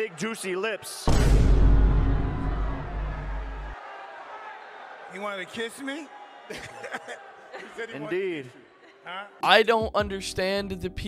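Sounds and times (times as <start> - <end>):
deep bass-heavy sound effect: 1.1 - 3.8.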